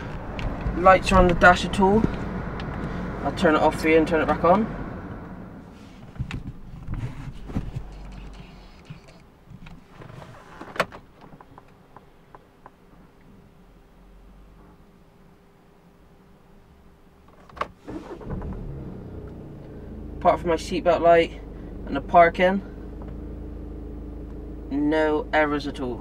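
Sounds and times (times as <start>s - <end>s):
car engine cranking and starting: 0.0s - 5.7s, 6.3s - 11.5s, 17.6s - 26.0s
car engine idling: 0.0s - 5.7s, 17.9s - 26.0s
car engine running: 0.0s - 9.2s, 17.9s - 26.0s.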